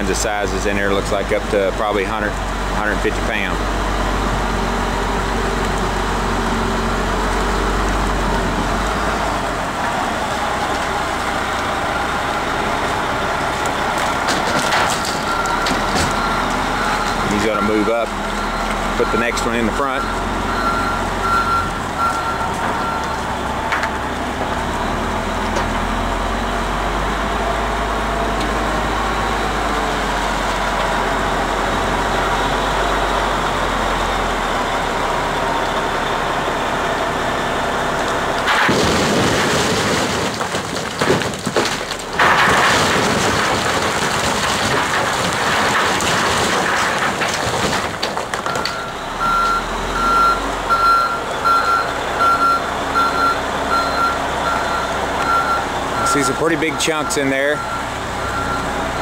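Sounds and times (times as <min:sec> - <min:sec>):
heavy diesel engine running: 0:00.0 - 0:59.0
rocks crashing into trailer bed: 0:14.0 - 0:16.2, 0:38.5 - 0:48.9
backup alarm beeping: 0:15.2 - 0:23.3, 0:48.6 - 0:58.7.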